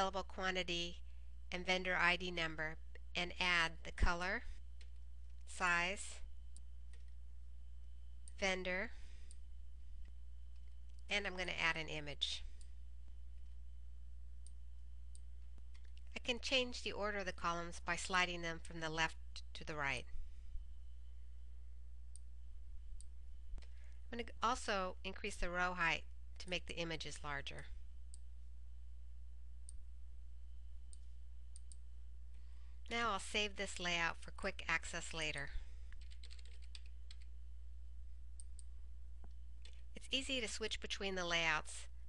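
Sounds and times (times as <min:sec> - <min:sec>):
low electrical hum: 0:00.0 - 0:42.0
computer mouse click: 0:30.9 - 0:31.8.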